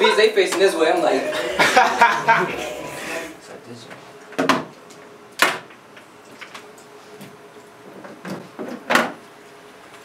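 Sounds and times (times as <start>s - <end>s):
person speaking: 0.7s - 3.6s.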